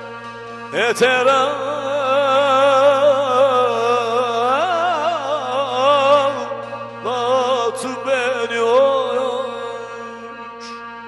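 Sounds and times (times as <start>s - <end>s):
long-necked lute playing: 0.0s - 11.0s
man singing folk song: 0.7s - 11.0s.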